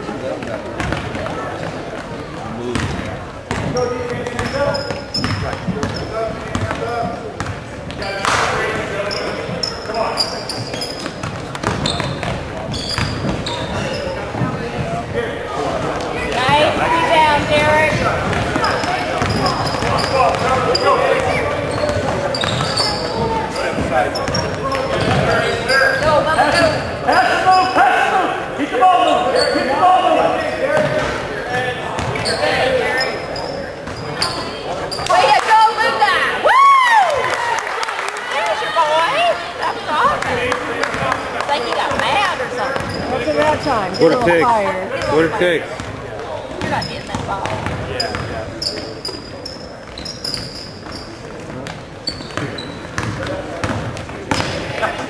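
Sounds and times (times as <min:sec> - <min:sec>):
spectators and players voices: 0:00.0 - 0:55.0
basketball bouncing on hardwood floor: 0:46.6 - 0:48.3.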